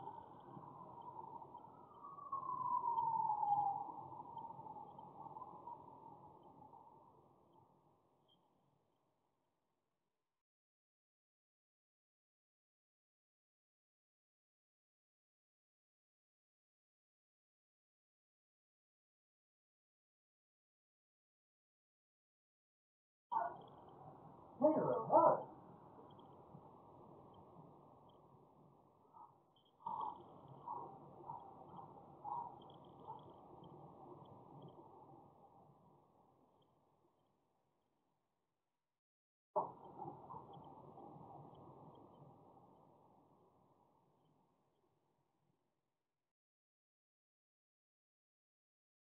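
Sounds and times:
distant siren wailing: 0:00.0 - 0:07.0
owl hooting: 0:29.2 - 0:31.5, 0:32.2 - 0:33.2.

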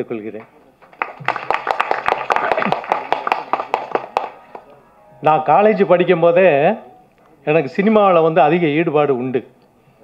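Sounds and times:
audience applauding: 0:00.8 - 0:04.7.

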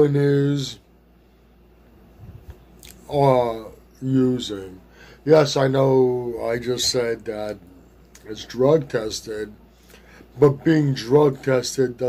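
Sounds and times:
faint room hum: 0:00.0 - 0:12.0
wet mouth clicks: 0:02.8 - 0:03.1.

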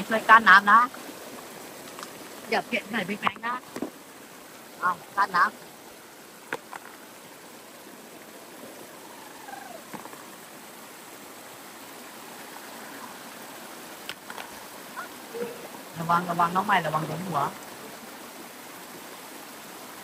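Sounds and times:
stream rushing over rocks: 0:00.0 - 0:20.0.

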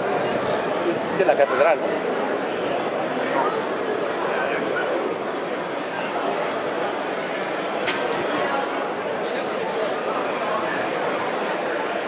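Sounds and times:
crowd babble: 0:00.0 - 0:12.0.

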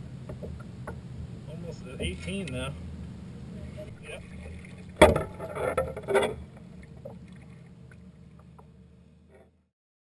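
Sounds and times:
river water splashing: 0:00.0 - 0:08.6
faint small splashes: 0:03.7 - 0:08.7.

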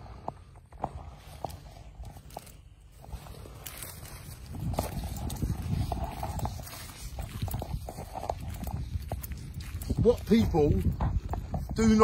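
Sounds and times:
footsteps on dry grass: 0:00.0 - 0:12.0.

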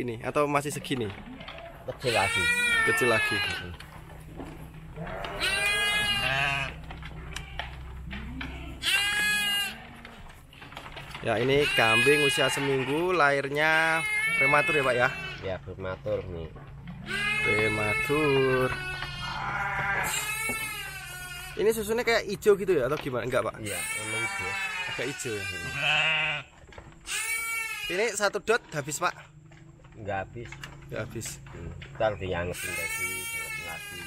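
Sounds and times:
lamb bleating: 0:02.0 - 0:03.8, 0:04.9 - 0:10.2, 0:11.3 - 0:15.6, 0:17.0 - 0:22.0, 0:23.6 - 0:28.2, 0:32.4 - 0:34.0.

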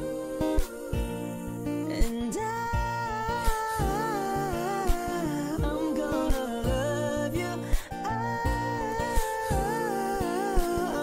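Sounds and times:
pop song drum beat with bass: 0:00.0 - 0:11.0
wavering wordless vocal melody: 0:00.0 - 0:11.0.

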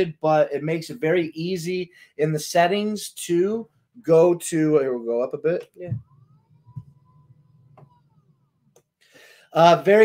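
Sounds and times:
faint rising and falling tone: 0:05.8 - 0:08.8.

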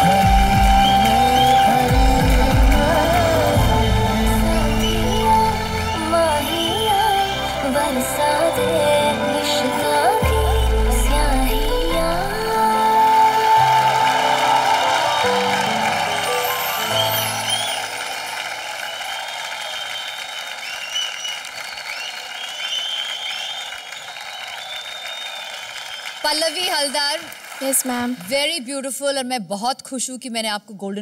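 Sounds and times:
audience applauding: 0:00.0 - 0:09.0, 0:12.2 - 0:28.6
background music with held notes: 0:00.0 - 0:18.4.

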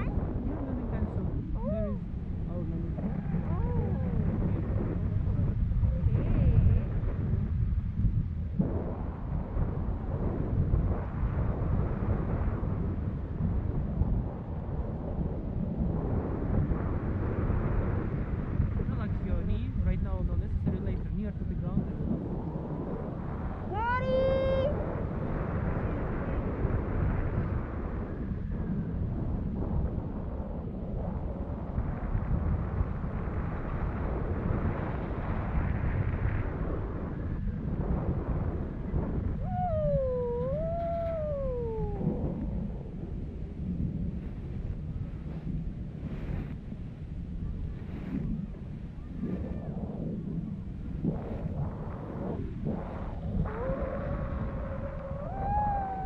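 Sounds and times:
wind buffeting microphone: 0:00.0 - 0:56.0
person giving rising cry: 0:39.4 - 0:42.2, 0:53.5 - 0:56.0.

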